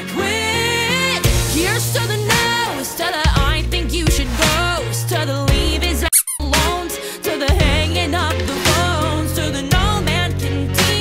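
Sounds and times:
pop song with vocal: 0:00.0 - 0:11.0
short high squeaky sound: 0:06.1 - 0:06.6.

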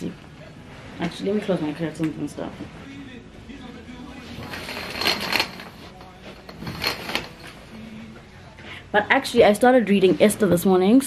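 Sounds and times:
curtain rings scraping along pole: 0:04.2 - 0:08.1.

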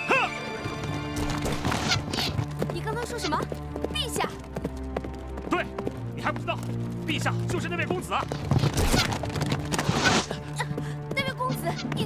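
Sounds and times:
film score with low notes: 0:00.0 - 0:12.0
horse hooves clip-clopping: 0:00.4 - 0:12.0.

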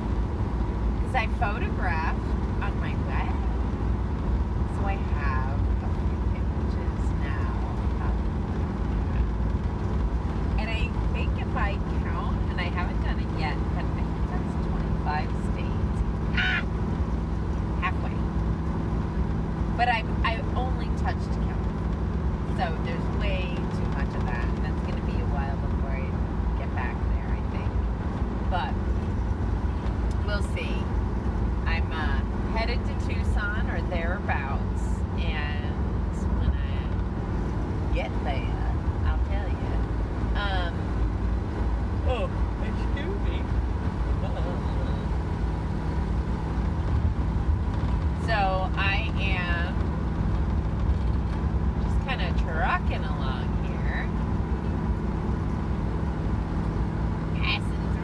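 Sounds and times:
van engine and road noise: 0:00.0 - 0:58.0
woman talking: 0:01.0 - 0:03.6, 0:04.7 - 0:08.2, 0:10.6 - 0:16.6, 0:17.8 - 0:18.2, 0:19.8 - 0:21.7, 0:22.5 - 0:27.8, 0:28.5 - 0:28.8, 0:30.2 - 0:30.9, 0:31.7 - 0:37.0, 0:37.9 - 0:40.8, 0:48.2 - 0:49.8, 0:51.9 - 0:54.1, 0:57.4 - 0:58.0.

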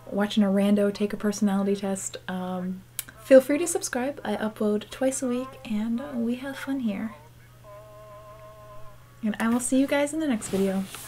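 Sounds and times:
woman humming: 0:03.1 - 0:09.5.

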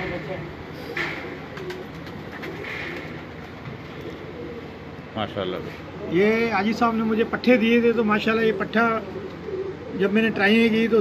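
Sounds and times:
pigeons cooing softly: 0:00.0 - 0:11.0.

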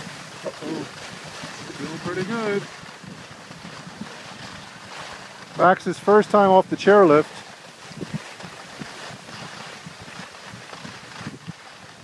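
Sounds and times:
wind rushing on microphone: 0:00.0 - 0:12.0.

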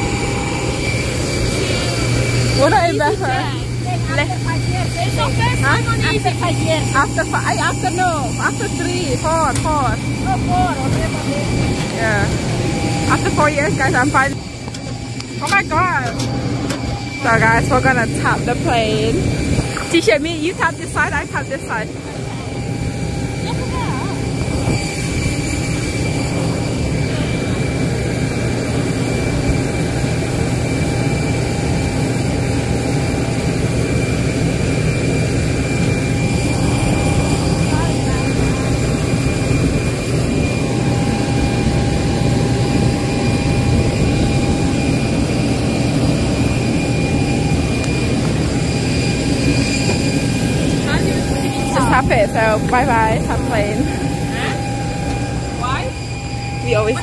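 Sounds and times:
jet aircraft rumble and whine: 0:00.0 - 0:57.0.

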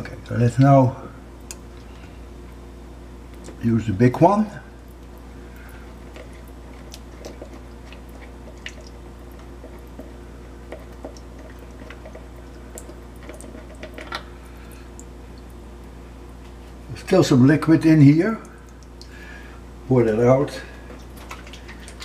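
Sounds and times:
faint liquid sloshing: 0:00.0 - 0:22.0.

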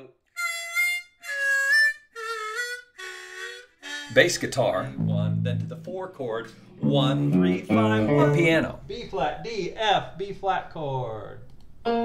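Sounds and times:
harmonica notes: 0:00.0 - 0:09.5.

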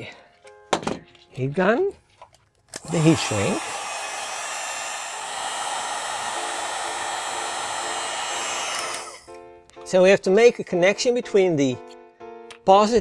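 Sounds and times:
heat gun blowing with whine: 0:02.8 - 0:09.4.

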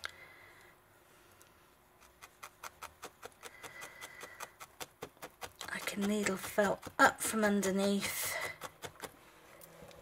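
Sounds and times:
felting needle poking wool: 0:02.0 - 0:09.2.

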